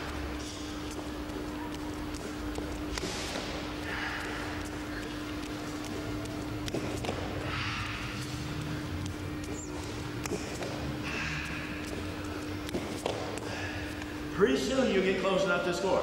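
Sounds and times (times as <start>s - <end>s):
bare feet shuffling and tapping: 0.0s - 16.0s
steady hum: 0.0s - 16.0s.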